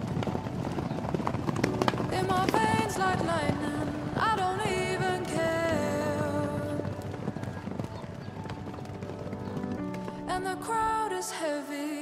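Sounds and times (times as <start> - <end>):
horses galloping over grass: 0.0 - 11.1
quiet music: 1.4 - 12.0.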